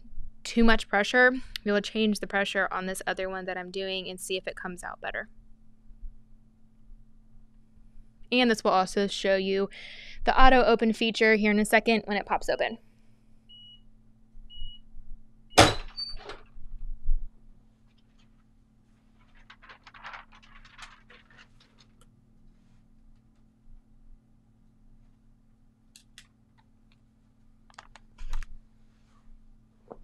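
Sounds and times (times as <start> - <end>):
timer beeps: 13.5 - 13.8, 14.5 - 14.8
rustling: 17.8 - 23.5.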